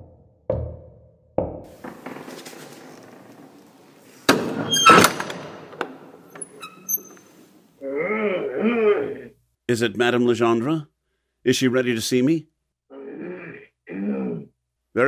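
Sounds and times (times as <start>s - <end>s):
door clattering open with squeak: 1.8s - 7.5s.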